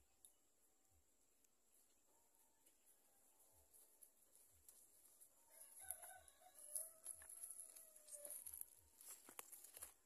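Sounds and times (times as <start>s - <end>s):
rooster crowing: 5.4s - 8.5s.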